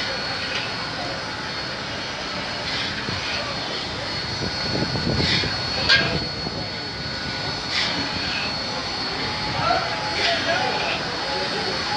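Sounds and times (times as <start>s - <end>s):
forced-air burners rushing: 0.0s - 11.9s
thin high whine: 0.0s - 11.9s.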